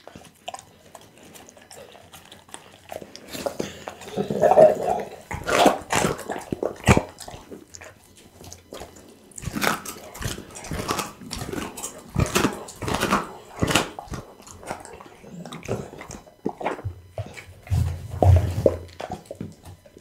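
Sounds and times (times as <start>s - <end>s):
dog chewing bone wet crunches: 0.0s - 20.0s.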